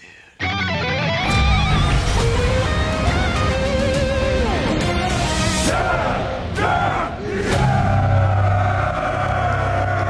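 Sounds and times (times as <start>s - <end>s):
men yelling and whooping: 5.6s - 10.0s.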